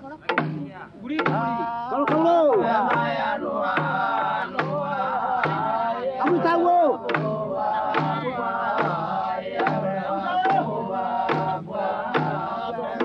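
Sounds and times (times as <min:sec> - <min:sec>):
steady drum beat: 0:00.2 - 0:13.0
group of voices chanting: 0:01.1 - 0:13.0.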